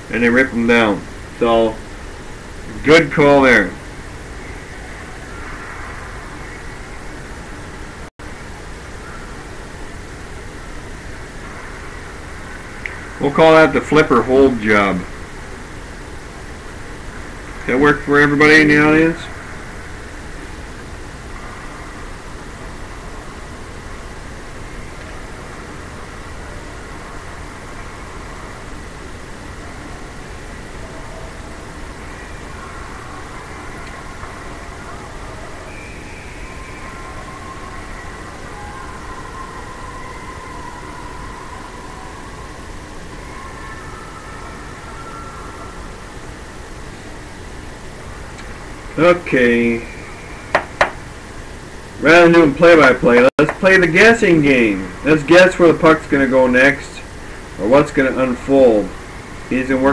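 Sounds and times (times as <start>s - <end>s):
constant low hum: 0.0s - 59.9s.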